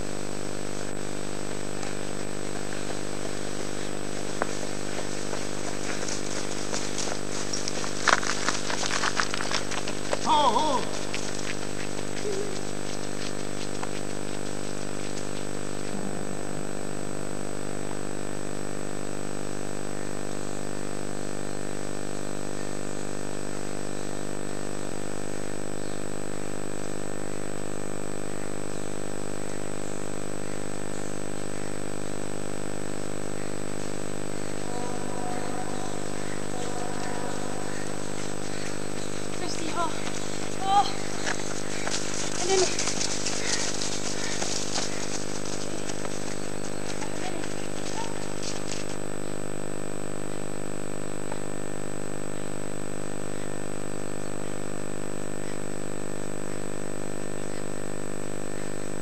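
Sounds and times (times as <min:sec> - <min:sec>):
steady hum with overtones: 0:00.0 - 0:59.0
short falling cry: 0:10.2 - 0:11.2
thin high whine: 0:14.7 - 0:59.0.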